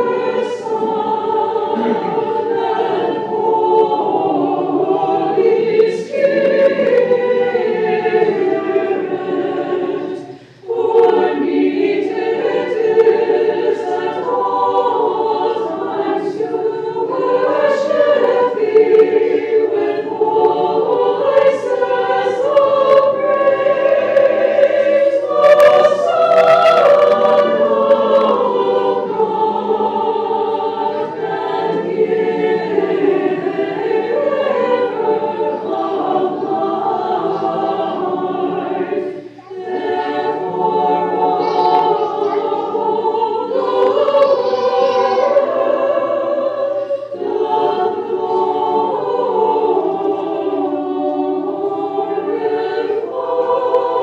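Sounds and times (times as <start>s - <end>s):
choir chanting unaccompanied: 0.0s - 54.0s.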